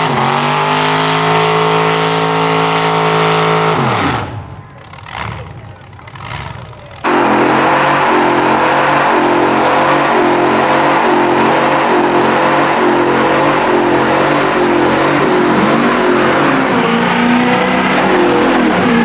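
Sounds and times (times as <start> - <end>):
truck engine revving high: 0.0 - 19.0
spinning tyres hissing: 6.6 - 19.0.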